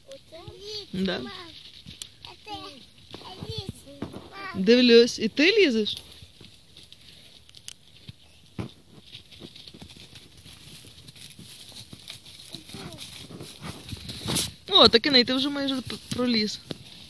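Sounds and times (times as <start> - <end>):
rustling in dry leaves: 0.0 - 17.0
faint voice: 12.5 - 13.2.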